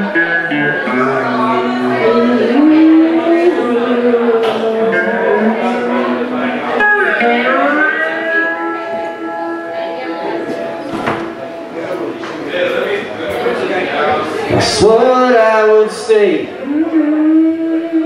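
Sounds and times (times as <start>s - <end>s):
person singing long held notes: 0.0s - 11.4s, 16.6s - 18.0s
guitar accompaniment: 0.0s - 18.0s.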